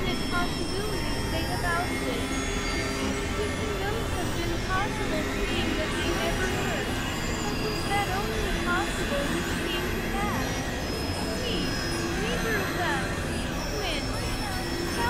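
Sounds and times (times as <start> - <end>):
swooping synth pitch glides: 0.0 - 15.0
synthesizer drones: 0.0 - 15.0.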